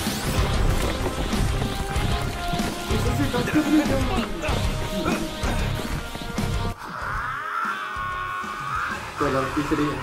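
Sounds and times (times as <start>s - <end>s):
dramatic background music: 0.0s - 10.0s.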